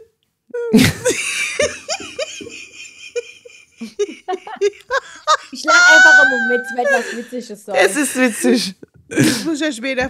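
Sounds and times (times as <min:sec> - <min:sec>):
woman laughing: 0:00.7 - 0:07.4.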